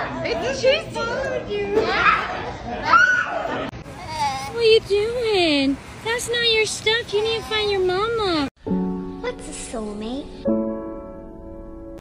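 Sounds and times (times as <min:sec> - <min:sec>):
children shouting and squealing: 0:01.6 - 0:04.6.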